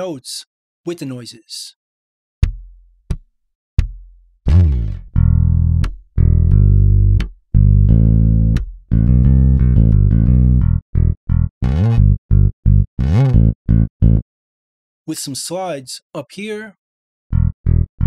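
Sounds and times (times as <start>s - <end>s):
electric bass line: 4.5s - 14.2s, 17.3s - 18.0s.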